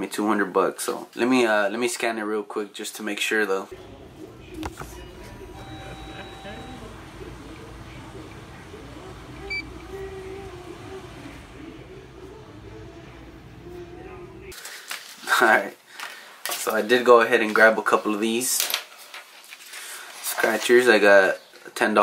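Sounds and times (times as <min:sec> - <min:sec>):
indistinct voices: 0:03.7 - 0:14.6
low hum: 0:03.7 - 0:14.6
short electronic beep: 0:05.0 - 0:06.9, 0:09.4 - 0:09.8.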